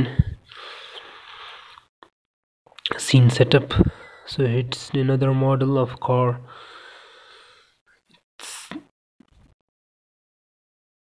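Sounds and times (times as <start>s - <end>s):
breath close to microphone: 0.1s - 1.9s, 6.5s - 7.8s
man speaking: 2.9s - 6.5s.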